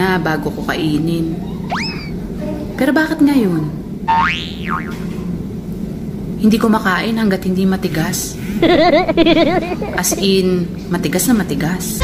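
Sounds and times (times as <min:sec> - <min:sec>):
whistle gliding up and down: 0:01.7 - 0:02.1.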